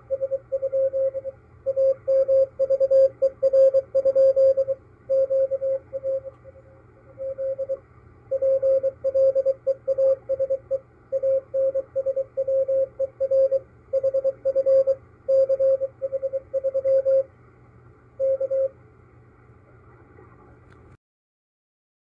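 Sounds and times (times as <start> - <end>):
morse code tone: 0.0 - 6.4, 7.1 - 17.3, 18.2 - 18.8.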